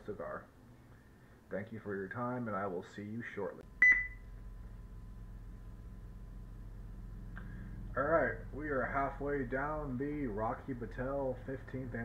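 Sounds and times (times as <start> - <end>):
low electrical hum: 0.0 - 12.0
short beep: 3.8 - 4.3.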